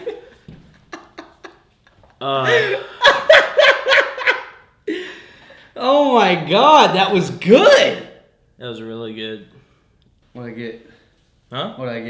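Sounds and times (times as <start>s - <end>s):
man laughing hard: 0.0s - 5.1s.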